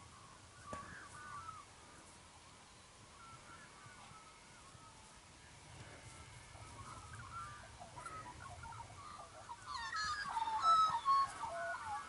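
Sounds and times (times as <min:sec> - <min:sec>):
birds singing: 0:00.0 - 0:12.0.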